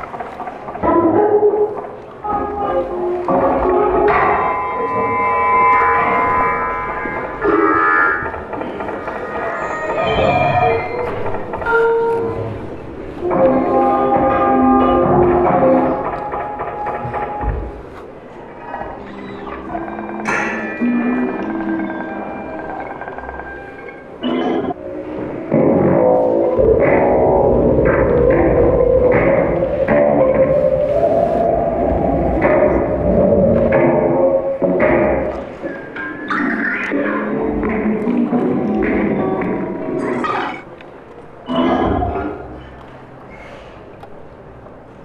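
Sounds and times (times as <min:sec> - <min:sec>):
sustained electronic tones: 0:01.8 - 0:09.4.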